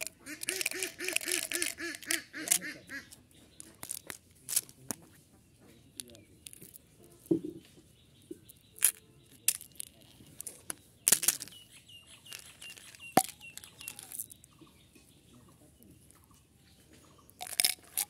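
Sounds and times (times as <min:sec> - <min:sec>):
candy wrapper crinkling: 0:00.0 - 0:05.0, 0:06.4 - 0:07.2, 0:08.6 - 0:11.6, 0:12.2 - 0:14.4, 0:17.4 - 0:18.0
plastic candy containers clicking: 0:00.0 - 0:05.1, 0:05.9 - 0:07.4, 0:08.4 - 0:14.5, 0:17.3 - 0:18.0.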